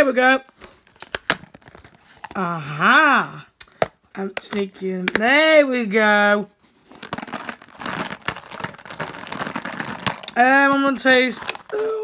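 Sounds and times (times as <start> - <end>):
cardboard box crackling and clicking: 7.0 - 11.8.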